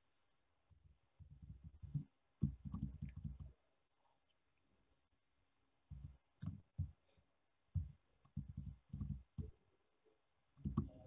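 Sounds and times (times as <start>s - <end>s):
faint irregular clicks: 0.2s - 4.8s, 7.7s - 9.8s.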